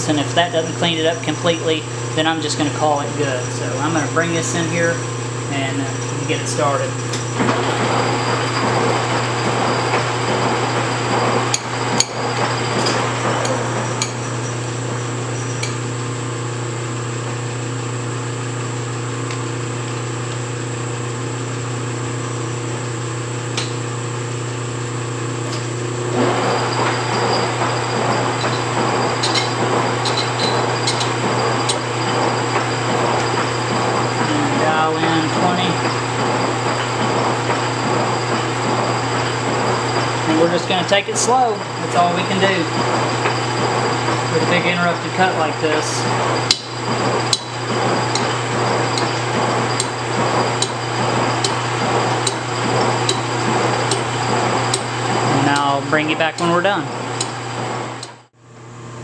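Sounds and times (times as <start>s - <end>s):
lathe motor hum: 0.0s - 58.9s.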